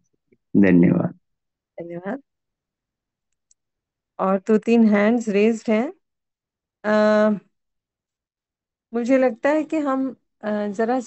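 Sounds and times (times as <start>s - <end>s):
person speaking: 0.6s - 1.1s.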